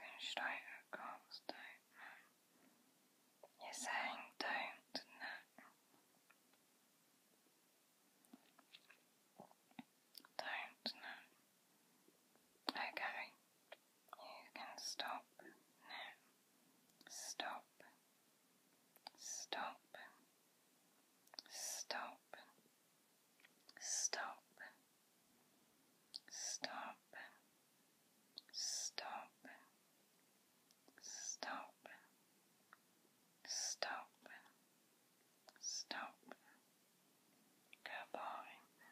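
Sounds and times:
faint whispering: 0:00.0 - 0:02.4, 0:03.4 - 0:05.8, 0:08.6 - 0:11.4, 0:12.6 - 0:13.4, 0:14.1 - 0:16.3, 0:17.0 - 0:18.0, 0:19.0 - 0:20.2, 0:21.4 - 0:22.6, 0:23.7 - 0:24.8, 0:26.2 - 0:27.4, 0:28.4 - 0:29.8, 0:30.9 - 0:32.2, 0:33.4 - 0:34.6, 0:35.4 - 0:36.7, 0:37.7 - 0:38.9.

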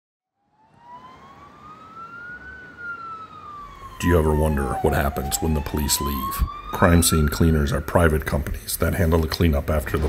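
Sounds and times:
emergency siren wailing: 0:00.4 - 0:09.3.

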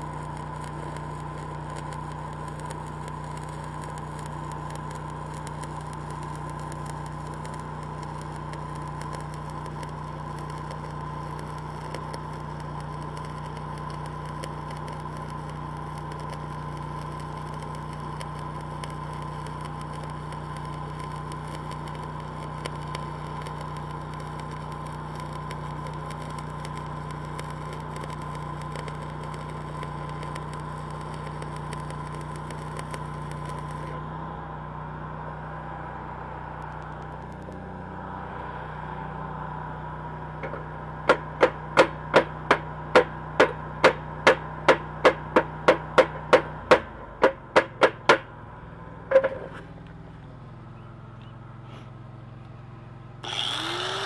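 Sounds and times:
welding arc crackling: 0:00.0 - 0:34.1, 0:36.6 - 0:37.8, 0:40.5 - 0:46.6, 0:53.2 - 0:54.0
welder engine drone: 0:00.0 - 0:54.0.

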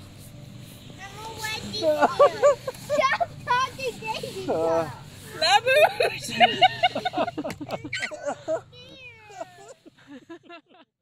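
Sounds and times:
voices talking: 0:01.0 - 0:09.8.

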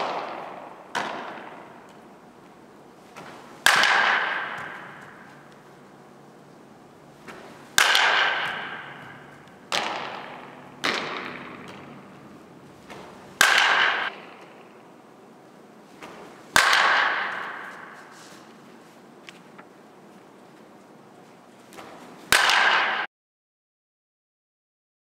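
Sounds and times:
bat hitting ball with echo: 0:00.0 - 0:02.2, 0:03.1 - 0:05.9, 0:07.1 - 0:14.9, 0:16.0 - 0:18.2, 0:21.8 - 0:23.1.

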